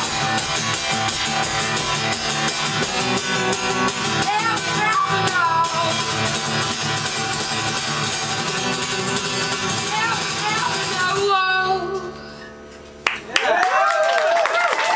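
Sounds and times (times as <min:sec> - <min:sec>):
live rock band playing: 0:00.0 - 0:11.4
audience cheering and whooping: 0:13.2 - 0:14.9.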